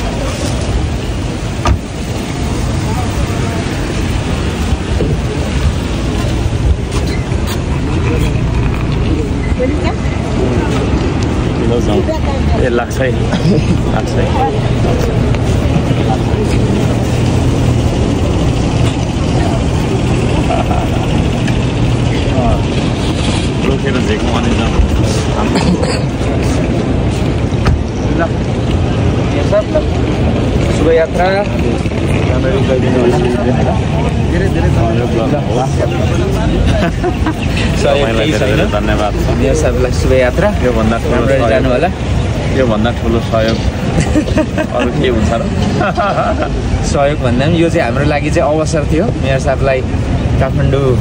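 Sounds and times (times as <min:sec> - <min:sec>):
people speaking: 0:00.0 - 0:27.4, 0:28.0 - 0:51.0
steady low rumble: 0:00.0 - 0:47.4
faint voices talking: 0:00.0 - 0:51.0.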